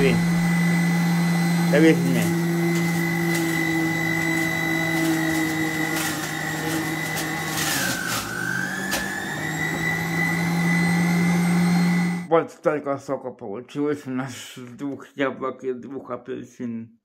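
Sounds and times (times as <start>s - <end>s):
juicer motor whining: 0.0s - 12.3s.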